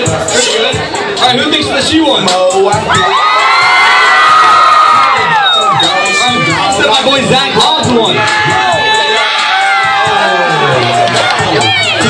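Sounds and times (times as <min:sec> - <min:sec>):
crowd cheering and screaming: 0:02.8 - 0:12.0.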